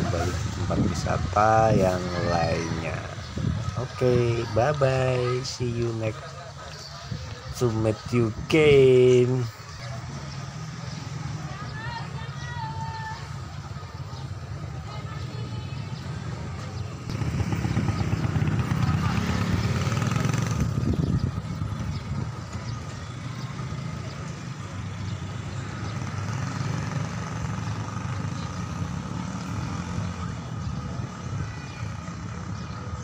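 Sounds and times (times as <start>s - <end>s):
motor vehicle running: 0.0s - 33.0s
traffic rumble: 0.0s - 33.0s.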